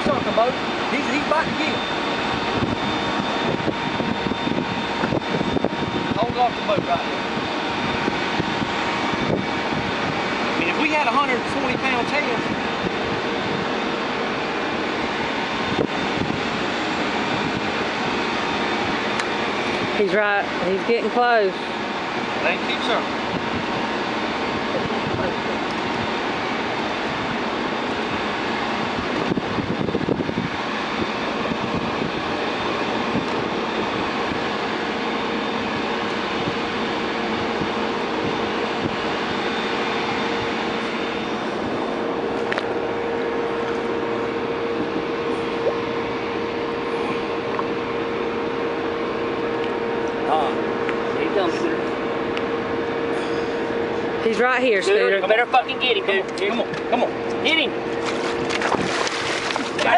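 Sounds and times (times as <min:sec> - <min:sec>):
water noise: 0:00.0 - 0:51.0, 0:56.6 - 0:59.9
boat engine running: 0:00.0 - 0:59.9
steady hum: 0:00.0 - 0:59.9
wind: 0:00.0 - 0:59.9.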